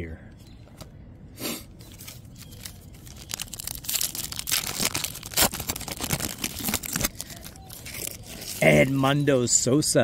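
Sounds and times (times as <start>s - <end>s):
foil card pack tearing: 1.9s - 9.1s.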